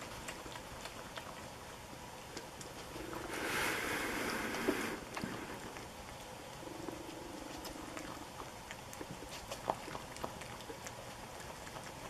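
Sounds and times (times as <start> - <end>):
animal chewing and smacking: 0.0 - 12.0.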